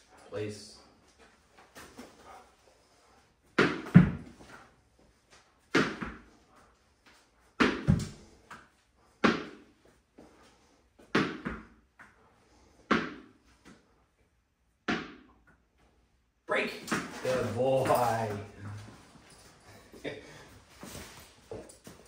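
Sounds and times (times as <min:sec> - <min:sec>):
tennis ball bouncing on concrete: 0:03.5 - 0:04.4, 0:05.7 - 0:06.4, 0:07.6 - 0:09.7, 0:11.0 - 0:12.2, 0:12.8 - 0:13.8, 0:14.8 - 0:15.6.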